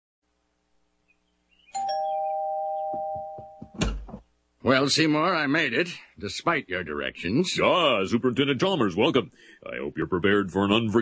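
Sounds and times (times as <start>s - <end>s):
two-tone doorbell chime: 1.8s - 3.8s
soft knocks: 2.9s - 4.3s
front door opening thump: 3.6s - 4.2s.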